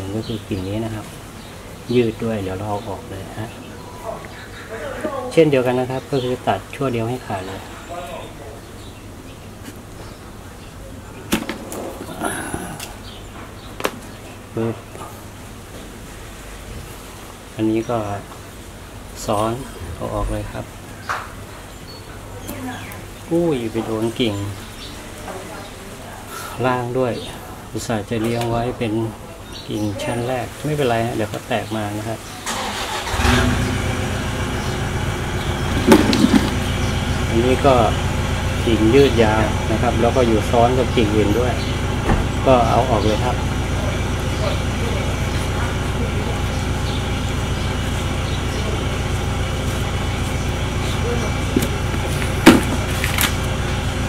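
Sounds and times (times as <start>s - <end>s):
motor running with low rumble: 19.6s - 20.9s, 33.2s - 54.0s.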